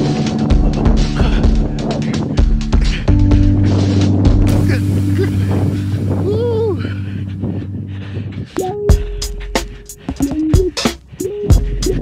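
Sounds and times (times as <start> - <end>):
background music with held low notes: 0.0 - 12.0.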